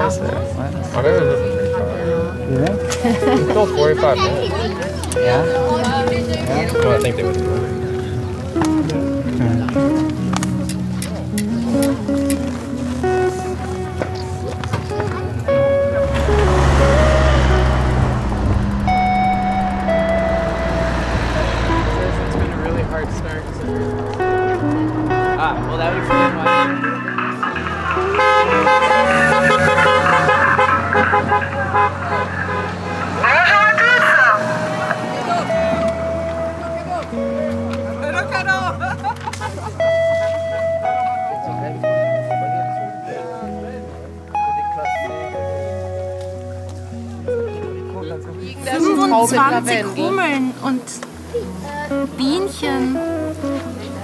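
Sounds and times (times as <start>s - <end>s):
vehicle rumbling by: 15.0s - 40.3s
horn toots: 15.5s - 36.6s
wavering gliding tone: 15.8s - 30.4s.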